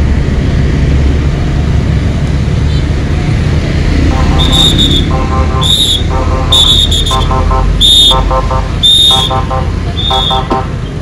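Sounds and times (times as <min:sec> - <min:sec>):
motorcycle and traffic engines rumble: 0:00.0 - 0:11.0
electronic alarm beeping and chirping: 0:04.3 - 0:10.6.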